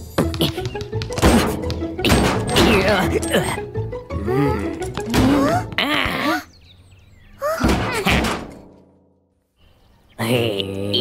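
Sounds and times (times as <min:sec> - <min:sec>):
door slamming shut: 0:01.2 - 0:03.0, 0:07.6 - 0:08.8.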